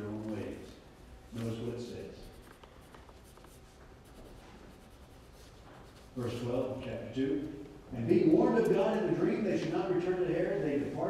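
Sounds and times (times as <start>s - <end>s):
paper pages rustling: 1.3s - 6.0s.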